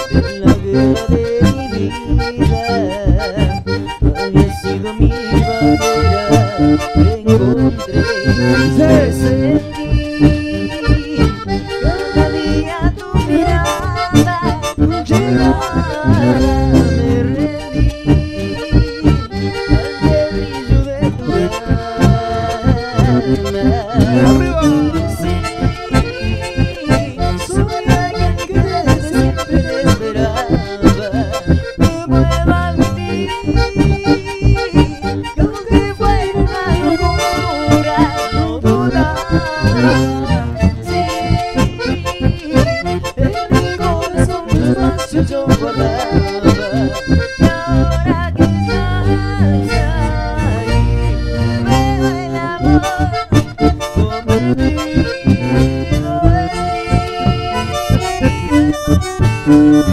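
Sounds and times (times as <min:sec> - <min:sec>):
acoustic guitar: 0:00.0 - 0:59.9
bandoneon and accordion melody: 0:00.0 - 0:59.9
electric bass: 0:00.0 - 0:59.9.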